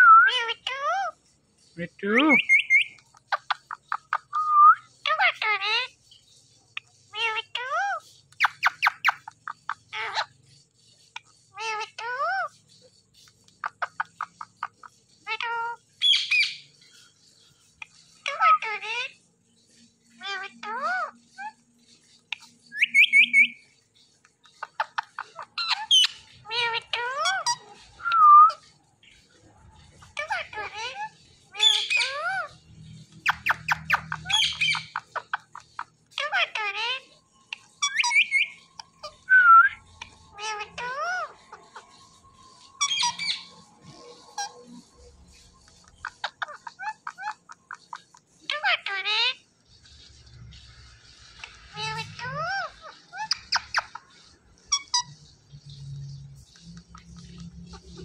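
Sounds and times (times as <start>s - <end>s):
parakeet squawks: 0.0s - 6.1s, 6.7s - 58.0s
parakeet clicking chatter: 0.3s - 58.0s
sharp bird chirps: 1.8s - 6.9s, 15.9s - 26.3s
parakeet whistle: 22.7s - 23.6s, 37.8s - 41.3s.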